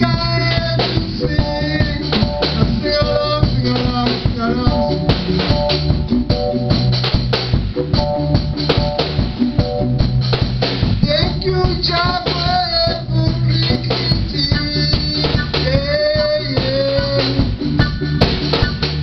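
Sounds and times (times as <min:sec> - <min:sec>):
band music with drums bass guitar: 0:00.0 - 0:19.0.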